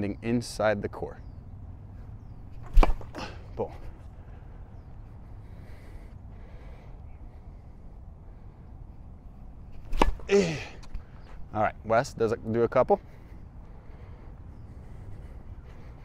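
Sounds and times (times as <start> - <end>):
tennis racket hitting ball: 2.6 - 3.4, 9.8 - 10.7
short falling grunt: 10.2 - 10.8.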